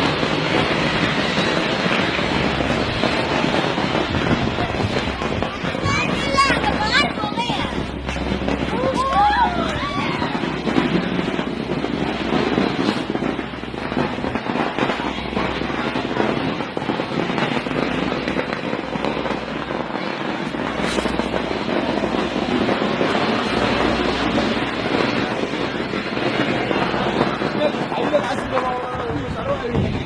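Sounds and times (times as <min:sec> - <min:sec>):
firecrackers crackling: 0:00.0 - 0:30.0.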